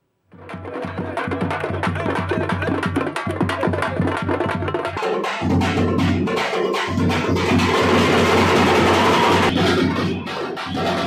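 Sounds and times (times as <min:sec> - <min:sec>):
frame drums beaten with sticks: 0:00.4 - 0:11.0.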